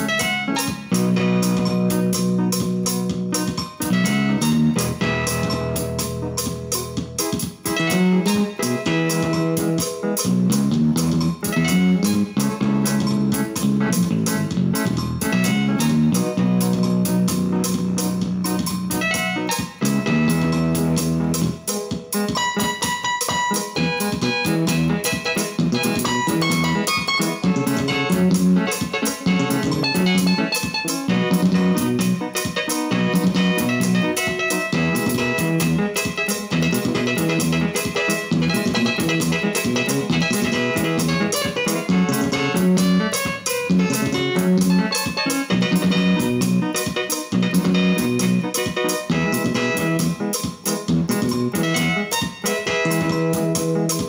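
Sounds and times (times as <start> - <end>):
electronic keyboard melody: 0.0 - 54.0
keyboard backing beat: 0.0 - 54.0.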